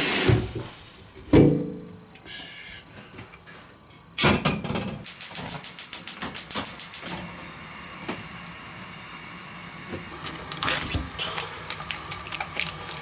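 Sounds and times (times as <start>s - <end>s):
gas stove igniter clicking: 5.1s - 7.2s
gas flame hissing: 5.1s - 13.0s.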